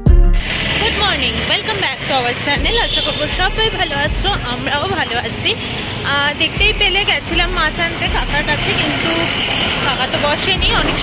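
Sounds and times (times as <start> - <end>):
large truck: 0.0 - 11.0
road traffic passing: 0.0 - 11.0.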